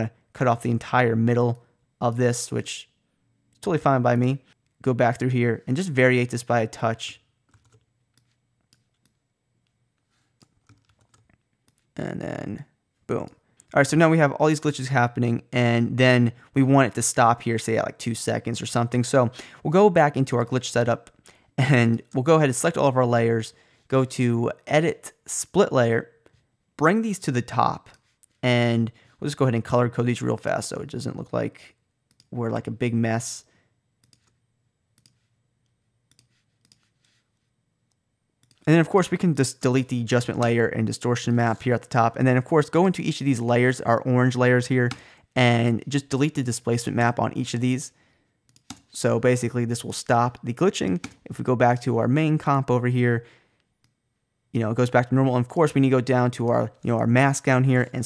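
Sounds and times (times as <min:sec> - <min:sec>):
faint low hum: 0:00.0 - 0:58.0
keyboard and mouse clicks: 0:07.5 - 0:09.8, 0:10.4 - 0:11.9, 0:34.0 - 0:34.4, 0:35.0 - 0:35.3, 0:36.1 - 0:36.9, 0:38.4 - 0:38.7, 0:48.5 - 0:48.9, 0:50.9 - 0:51.3.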